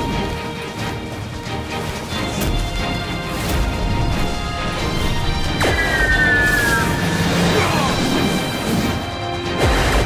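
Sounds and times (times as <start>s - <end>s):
battle background music: 0.0s - 10.0s.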